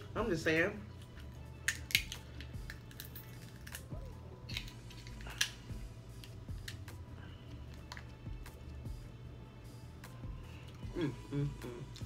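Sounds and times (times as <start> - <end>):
crab shell cracking: 1.6 - 3.9, 4.5 - 5.6.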